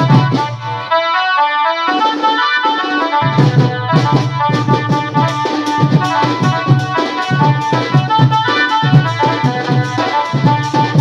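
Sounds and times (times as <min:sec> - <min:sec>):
drums: 0:00.0 - 0:01.2, 0:01.8 - 0:11.0
folk music over loudspeakers: 0:00.0 - 0:11.0.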